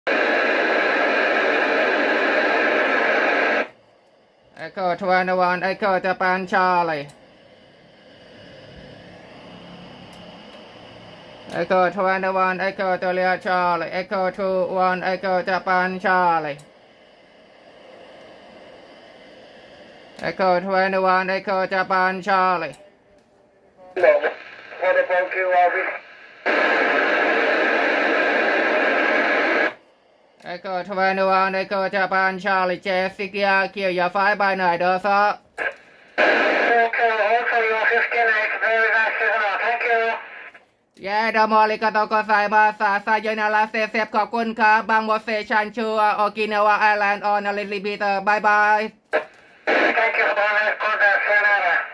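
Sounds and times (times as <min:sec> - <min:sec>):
radio receiver static hiss: 0:00.1 - 0:32.5, 0:33.4 - 0:40.8, 0:46.4 - 0:51.9.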